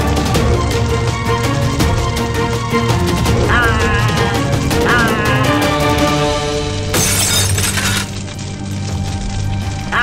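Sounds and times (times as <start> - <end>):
background music: 0.0 - 10.0
glass shattering: 6.9 - 8.4.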